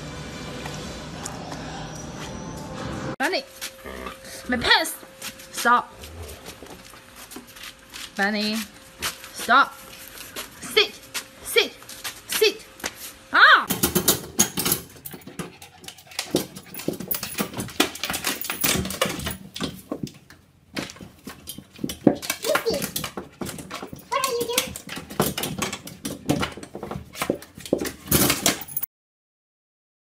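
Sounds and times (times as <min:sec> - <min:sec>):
dogs whining and yowling: 0:01.2 - 0:03.1
knocks and clatter: 0:13.7 - 0:28.8.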